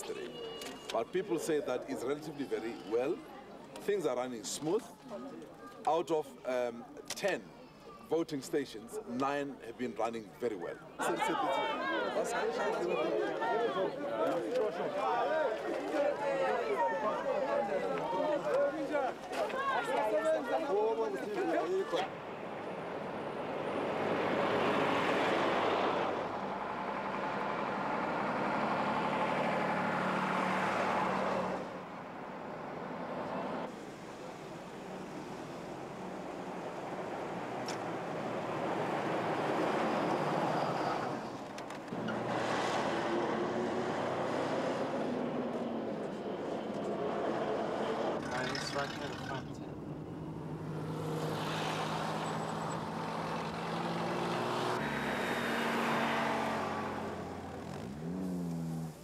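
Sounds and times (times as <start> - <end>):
trucks and cars driving past: 11.2 - 59.0.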